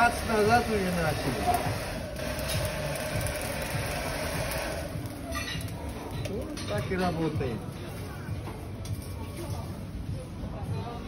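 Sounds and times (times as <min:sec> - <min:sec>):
hair dryer blowing: 0:00.0 - 0:05.0.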